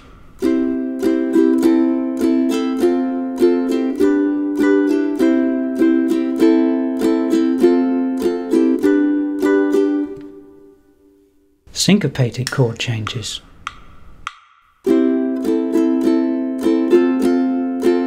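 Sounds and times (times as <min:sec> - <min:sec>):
ukulele strumming chords: 0:00.0 - 0:11.2, 0:14.8 - 0:18.0.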